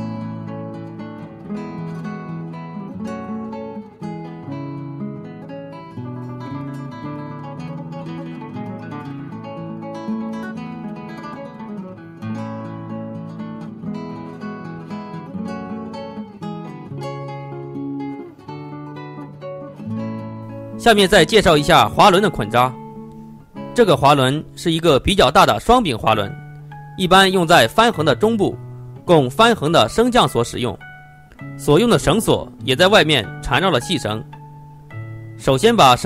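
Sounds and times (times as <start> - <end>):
acoustic guitar playing: 0.0 - 36.0.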